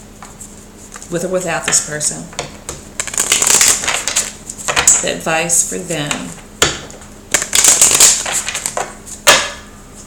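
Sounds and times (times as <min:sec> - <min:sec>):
cards being shuffled: 0:07.4 - 0:09.2.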